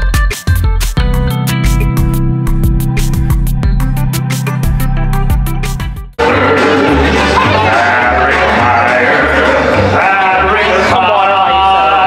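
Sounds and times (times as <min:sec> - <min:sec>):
backing track with pulsing bass: 0:00.0 - 0:11.7.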